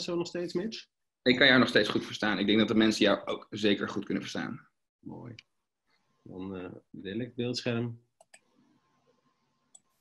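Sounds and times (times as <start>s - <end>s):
computer mouse clicks: 8.2s - 8.5s.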